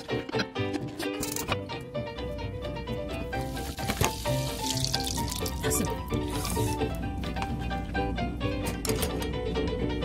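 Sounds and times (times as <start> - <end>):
background music: 0.0 - 10.0
butter sizzling in a pan: 3.4 - 5.6.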